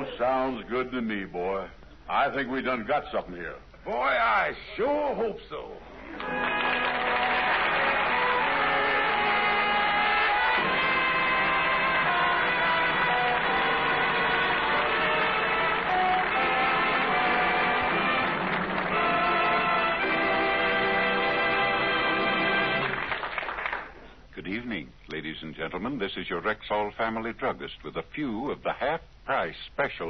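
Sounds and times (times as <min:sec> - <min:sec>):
muffled orchestral music: 0:06.4 - 0:23.0.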